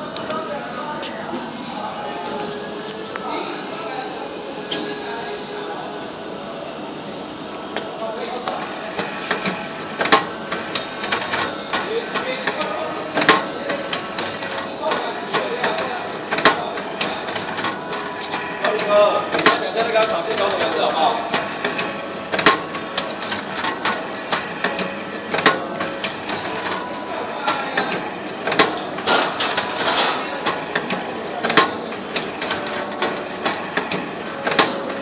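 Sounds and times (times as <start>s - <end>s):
faint machine hum: 0.0s - 35.0s
banding machine clicks: 9.3s - 26.8s, 27.8s - 35.0s.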